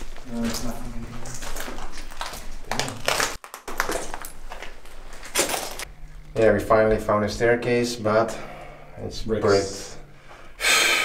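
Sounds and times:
footsteps crunching over debris: 0.0 - 5.9.

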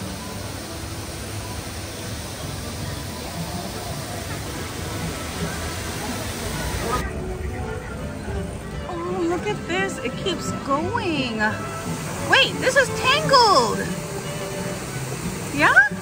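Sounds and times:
mist spray hiss: 0.0 - 7.0, 10.5 - 16.0
crowd chatter: 0.0 - 16.0
music: 0.0 - 16.0.

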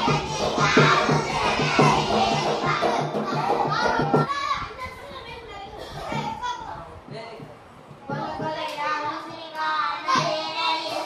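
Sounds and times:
backing track with steady beat: 0.0 - 4.4, 7.0 - 10.7
children singing into microphones: 0.0 - 4.4, 8.0 - 11.0.

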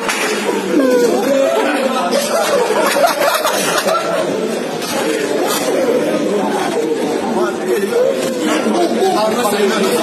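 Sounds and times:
men chattering and calling out: 0.4 - 10.0.

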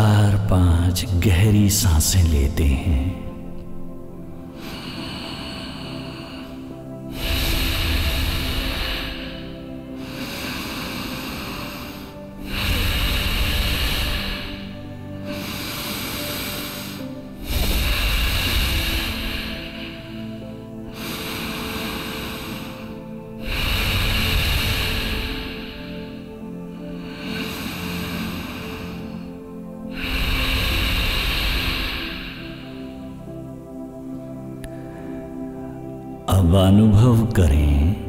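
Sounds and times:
soft meditation music: 0.0 - 38.0
person breathing deeply: 3.1 - 36.2.

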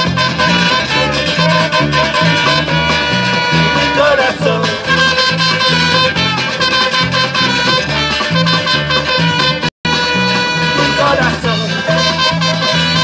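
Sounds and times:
live band playing: 0.0 - 13.0
saxophone: 0.0 - 13.0
trumpet: 0.0 - 13.0.

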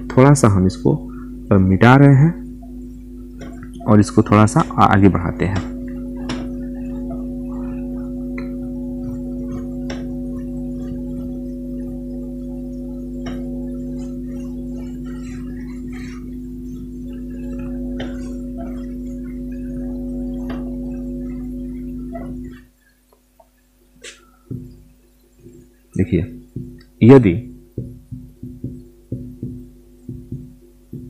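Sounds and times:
drone of held tones: 0.0 - 22.8, 24.0 - 31.0
marker tapping on whiteboard: 24.5 - 24.8, 26.5 - 26.9, 27.8 - 31.0.

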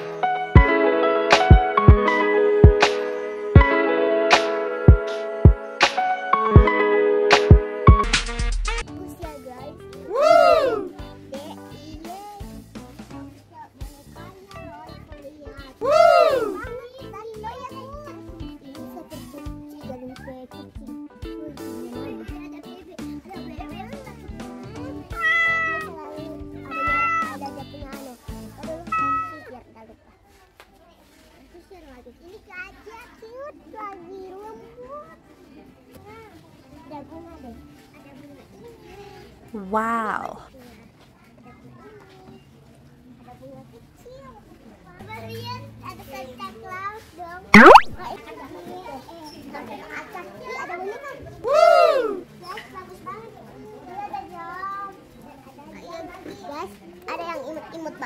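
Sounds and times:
young children chattering: 0.0 - 6.9, 8.9 - 58.0
background music: 0.0 - 11.9.

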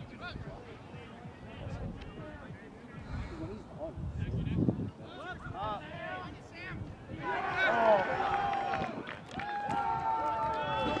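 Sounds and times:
people shouting and cheering: 5.0 - 11.0.

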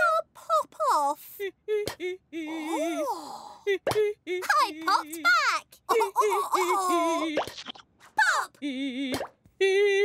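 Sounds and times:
cartoon character vocal sounds: 2.5 - 9.1.

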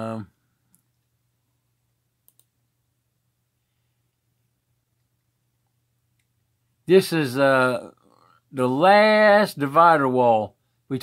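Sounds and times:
faint low hum: 0.0 - 11.0
computer mouse clicks: 2.2 - 2.6.

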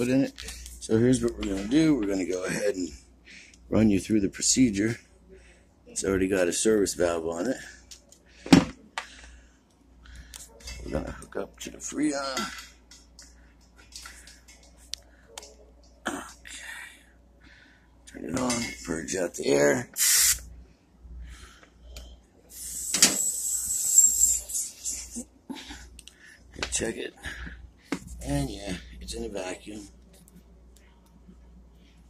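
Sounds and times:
gas hissing from hose: 20.0 - 20.4, 22.5 - 24.5.

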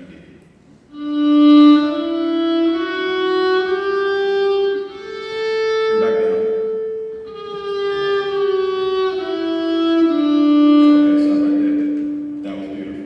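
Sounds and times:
bowed violin: 0.9 - 13.0.

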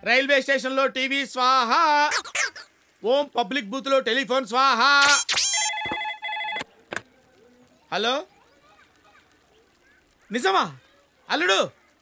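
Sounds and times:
payphone ringing: 5.5 - 6.7.

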